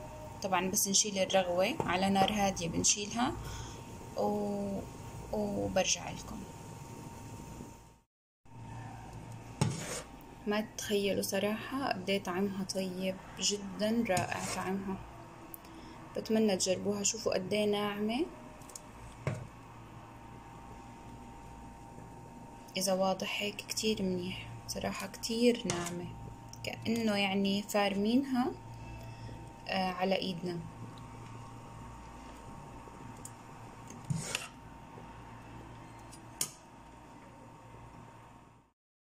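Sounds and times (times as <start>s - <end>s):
steady low hum: 0.0s - 8.0s, 8.6s - 38.7s
pot boiling hiss: 1.6s - 8.0s, 8.7s - 10.4s.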